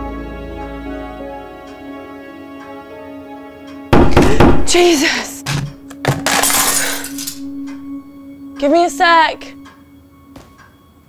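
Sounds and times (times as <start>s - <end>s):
glass breaking: 5.5s - 7.5s.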